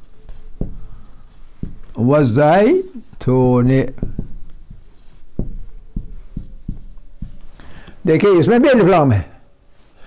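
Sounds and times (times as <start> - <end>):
marker pen writing on whiteboard: 0.0 - 7.7.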